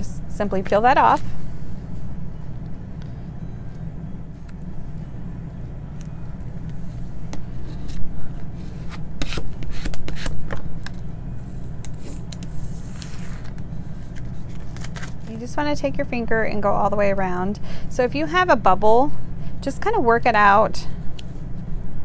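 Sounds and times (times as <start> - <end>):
steady low hum: 0.0 - 22.0
tape rustling and scraping: 6.0 - 15.3.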